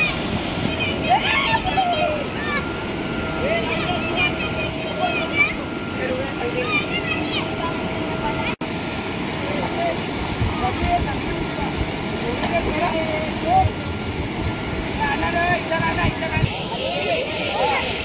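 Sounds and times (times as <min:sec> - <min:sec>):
steady rushing haze: 0:00.0 - 0:18.0.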